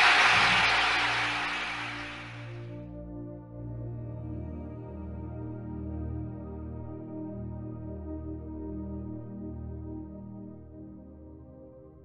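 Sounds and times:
low ambient music drone: 0.0s - 12.0s.

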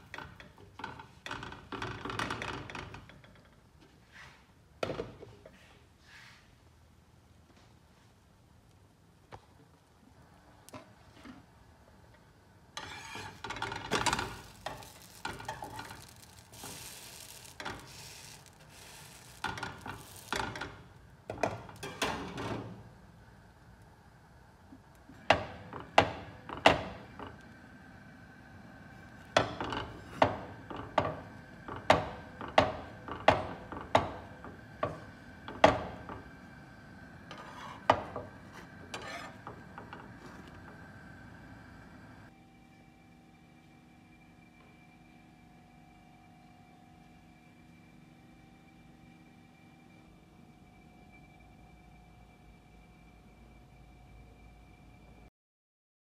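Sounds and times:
spatula and lid scraping pan: 12.8s - 20.8s, 37.3s - 40.5s.

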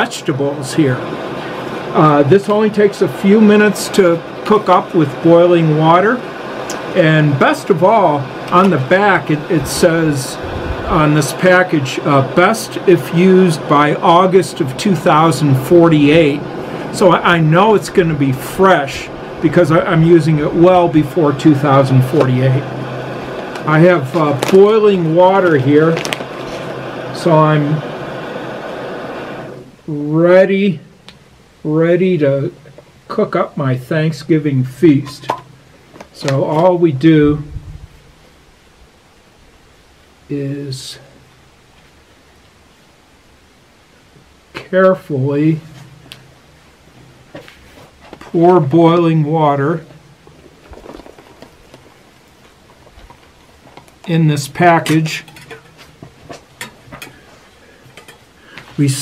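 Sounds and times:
water boiling: 0.0s - 29.7s, 47.9s - 59.0s
camp stove burner hissing: 0.0s - 30.1s, 38.0s - 59.0s.

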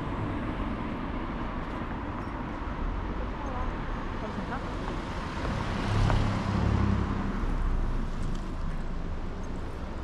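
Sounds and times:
street background noise: 0.0s - 10.0s
car passing by: 4.8s - 8.4s.

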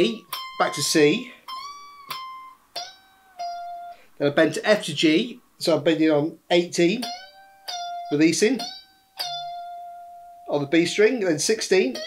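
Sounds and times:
electric guitar with string bends: 0.0s - 12.0s.

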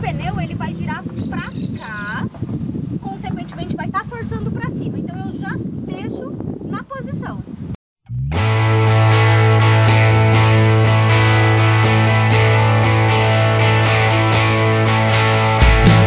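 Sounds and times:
distorted electric guitar music: 8.1s - 16.0s.

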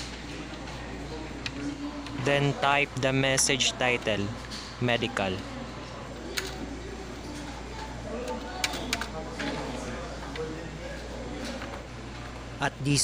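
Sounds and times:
faint voices: 0.0s - 13.0s.

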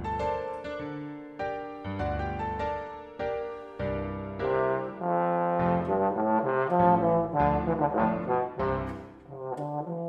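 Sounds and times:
bass trombone playing: 4.4s - 10.0s.

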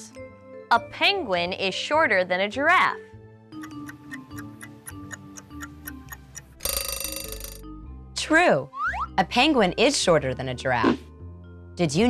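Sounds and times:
clock ticking: 3.6s - 7.6s
alarm clock bell ringing: 6.6s - 7.6s.

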